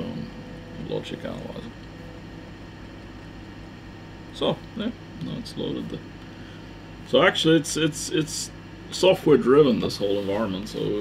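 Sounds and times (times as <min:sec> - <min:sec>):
fan noise and low hum: 0:00.0 - 0:11.0.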